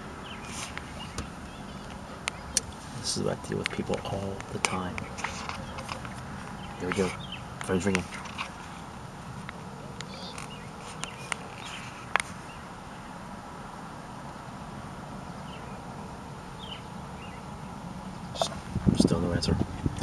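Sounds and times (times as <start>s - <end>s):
car cabin hum: 0.0s - 13.0s, 15.4s - 20.0s
faint bird chirps: 0.2s - 8.8s, 9.9s - 13.2s, 15.3s - 15.9s, 16.5s - 18.6s.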